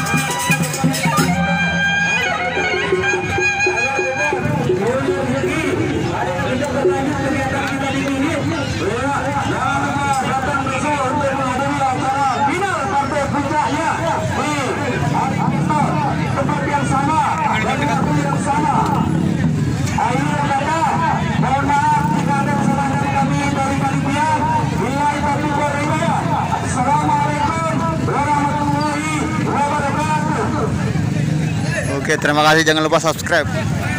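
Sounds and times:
crowd chatter: 0.0s - 33.9s
man talking over loudspeakers: 1.2s - 33.9s.

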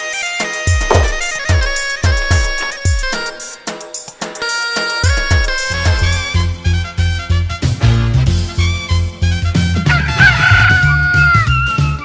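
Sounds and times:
music with steady bass beat: 0.7s - 4.4s, 5.0s - 8.6s
rooster crowing: 9.9s - 11.7s.

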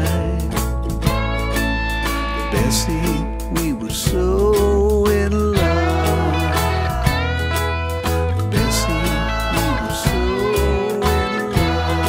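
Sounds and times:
drums keeping a steady beat: 0.0s - 12.0s
guitars playing: 0.0s - 12.0s.

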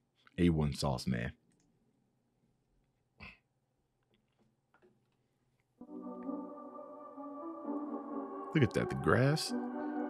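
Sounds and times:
music from a video: 5.8s - 10.0s.

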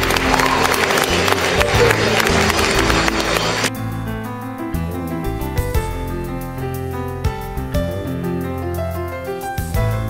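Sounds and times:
audience applauding: 0.0s - 3.7s
music: 0.0s - 10.0s.

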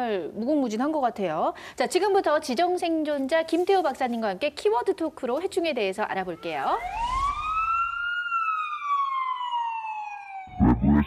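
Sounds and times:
siren wail falling in pitch: 6.3s - 11.0s.

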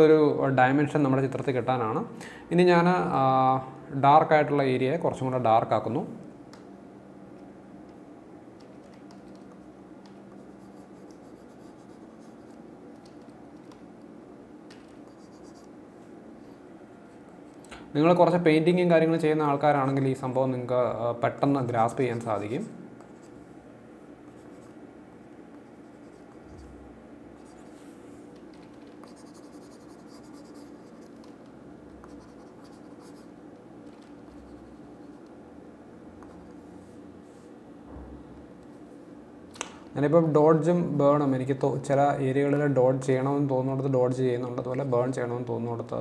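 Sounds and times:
steady low hum: 0.0s - 46.0s
computer mouse scratching and ticking: 8.6s - 14.1s, 28.5s - 35.4s, 36.2s - 36.6s
scratchy pen strokes: 10.4s - 12.6s, 29.0s - 31.3s, 32.0s - 33.3s.

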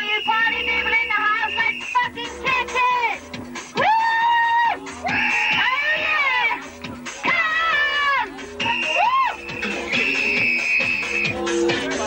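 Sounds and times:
rave dance music: 0.0s - 12.0s.

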